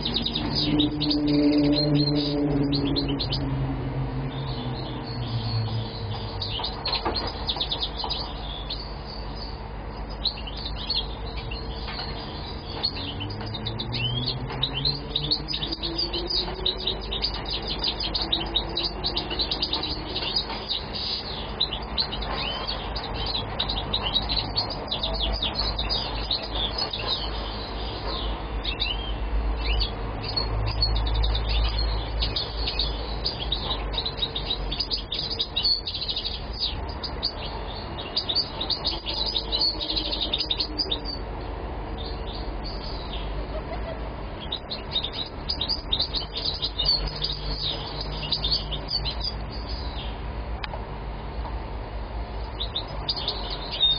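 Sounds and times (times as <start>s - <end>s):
low rumble: 0.0s - 6.8s
bird twittering and trilling: 0.0s - 50.7s, 52.4s - 53.9s.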